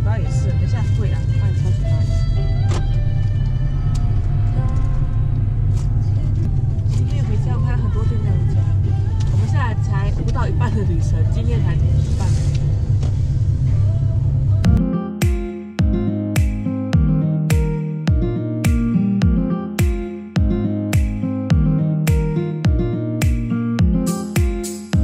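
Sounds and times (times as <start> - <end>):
music: 0.0 - 5.6, 6.4 - 11.6, 12.4 - 25.0
car engine and tyres rumble: 0.0 - 14.8.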